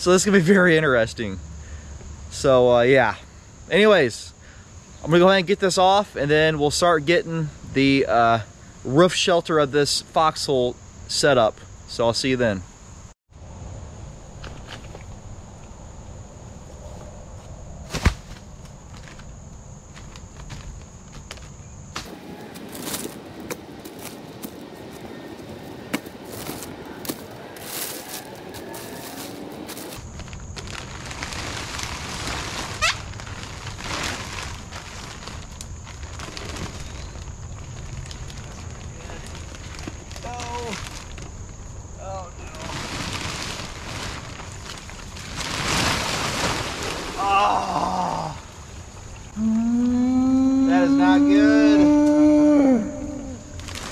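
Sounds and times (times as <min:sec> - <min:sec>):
tree limbs dragged and dropped: 0:16.8 - 0:25.1, 0:25.7 - 0:41.3, 0:42.5 - 0:47.3
twigs crackling: 0:17.9 - 0:41.5, 0:53.2 - 0:53.9
plastic sheeting rustling: 0:22.0 - 0:41.2, 0:42.4 - 0:47.4, 0:53.6 - 0:53.9.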